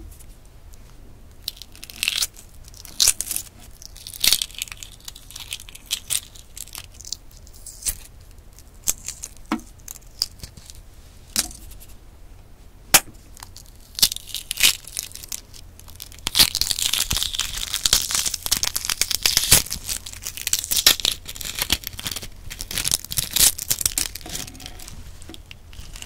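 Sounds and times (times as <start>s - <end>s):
eggshell cracking: 1.4s - 10.5s, 13.0s - 24.8s.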